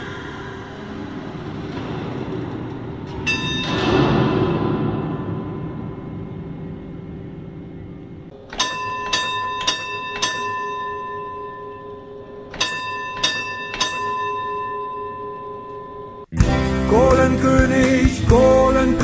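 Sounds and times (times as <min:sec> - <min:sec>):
bell struck: 0:08.5 - 0:16.3
song: 0:16.3 - 0:19.0.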